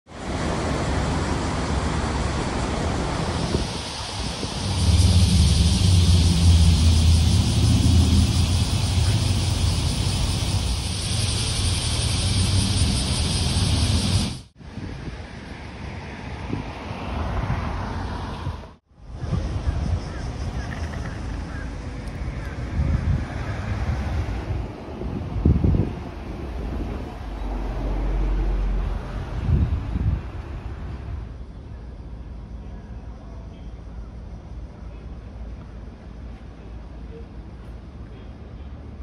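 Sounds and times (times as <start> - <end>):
road traffic hiss: 0.1 - 39.0
heavy low rumble: 0.2 - 14.6, 19.0 - 32.8
wind buffeting microphone: 0.3 - 17.8, 18.4 - 31.4.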